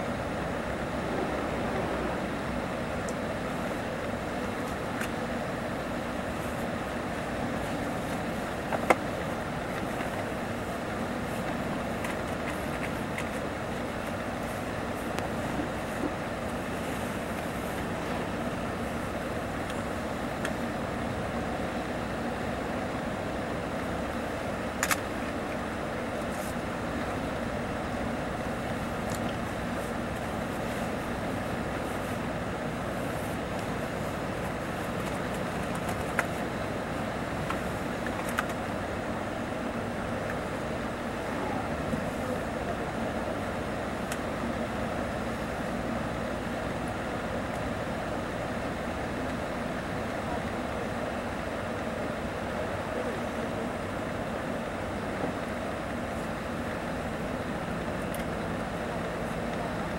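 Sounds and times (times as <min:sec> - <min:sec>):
tyre and road noise: 0:00.0 - 0:51.9
engine hum: 0:00.0 - 0:59.9.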